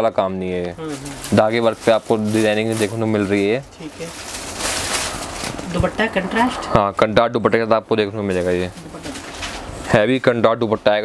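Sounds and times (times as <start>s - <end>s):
man talking: 0.0s - 3.7s, 6.7s - 8.7s, 9.9s - 11.0s.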